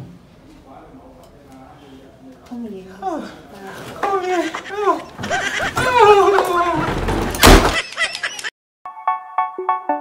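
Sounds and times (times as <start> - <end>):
wooden door slamming: 5.2 - 7.8
keyboard music notes: 8.9 - 10.0.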